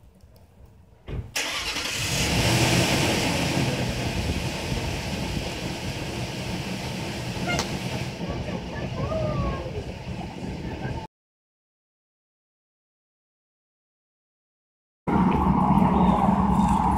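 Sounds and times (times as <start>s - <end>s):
vehicle engine starting and idling: 1.3s - 11.1s.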